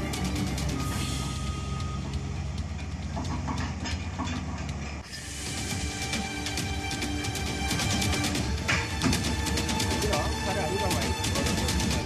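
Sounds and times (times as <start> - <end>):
excavator diesel engine running: 0.0 - 12.0.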